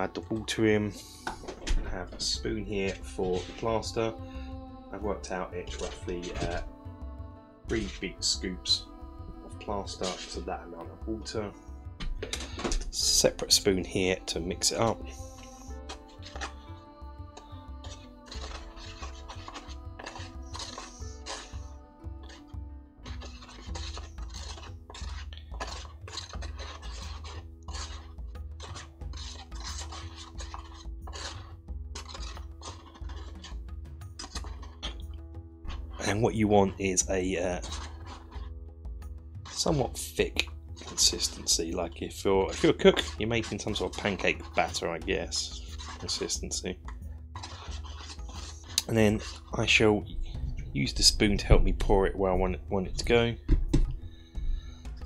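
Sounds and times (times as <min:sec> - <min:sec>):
plastic spoon scraping plastic tub: 0:00.0 - 0:06.8, 0:07.7 - 0:55.0.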